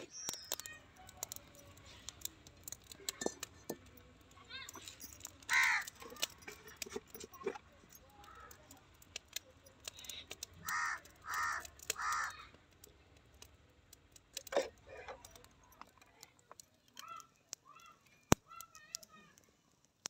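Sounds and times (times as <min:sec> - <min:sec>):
small clicks and crackles: 0:00.0 - 0:20.0
crow cawing: 0:05.5 - 0:06.1, 0:10.6 - 0:12.5.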